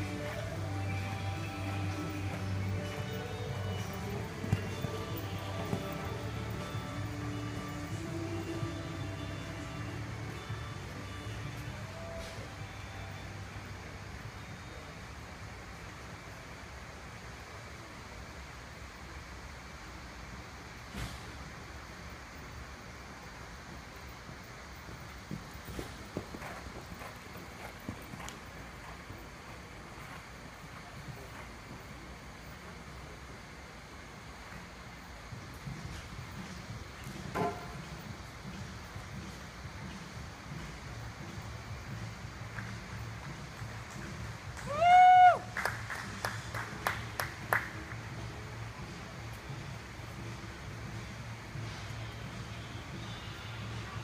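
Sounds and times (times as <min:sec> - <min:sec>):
hoofbeats on soft dirt: 0:00.0 - 0:15.0, 0:21.0 - 0:45.4, 0:46.0 - 0:54.0
handclaps: 0:43.9 - 0:48.0
person whooping cheer: 0:44.6 - 0:45.5.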